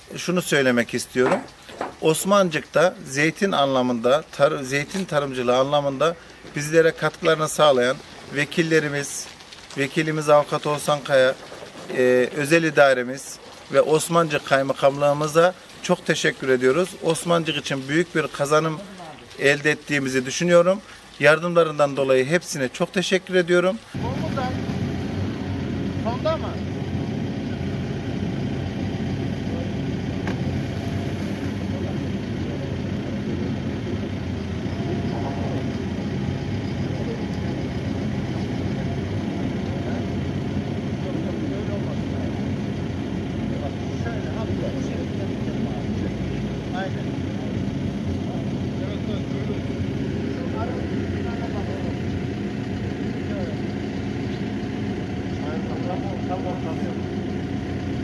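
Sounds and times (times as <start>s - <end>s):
people talking: 0.0s - 27.9s, 29.1s - 30.4s, 31.2s - 33.8s, 34.8s - 54.1s, 55.2s - 57.3s
excavator diesel engine running: 24.0s - 58.0s.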